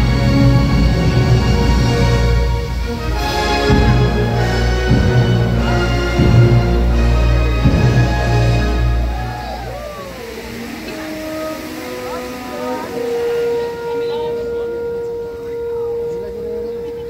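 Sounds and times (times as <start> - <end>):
crowd talking and calling out: 0.0 - 17.0
music: 0.0 - 17.0
long steady tone: 2.0 - 17.0.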